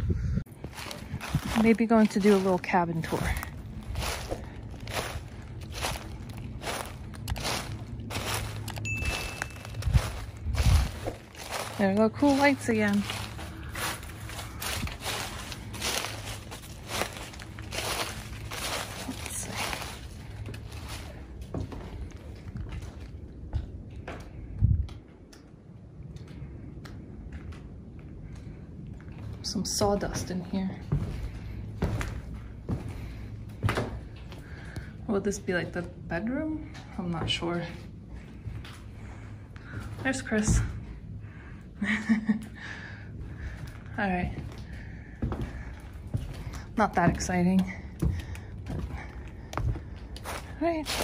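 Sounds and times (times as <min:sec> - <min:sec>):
footsteps crunching dry leaves: 0:00.5 - 0:22.2, 0:49.6 - 0:51.0.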